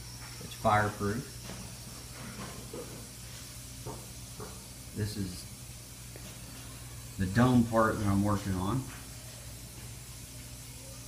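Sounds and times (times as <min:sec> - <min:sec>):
background hiss with low hum: 0:00.0 - 0:11.0.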